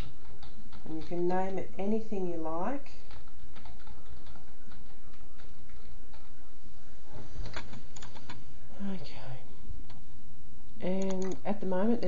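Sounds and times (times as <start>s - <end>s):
steady low hum: 0.0s - 12.0s
computer mouse and keyboard clicks: 3.0s - 6.4s, 7.4s - 8.4s, 10.9s - 11.4s.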